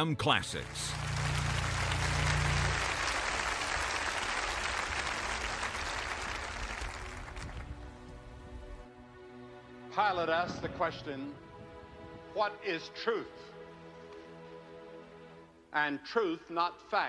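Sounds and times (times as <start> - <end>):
large audience applauding: 0.5 - 7.9.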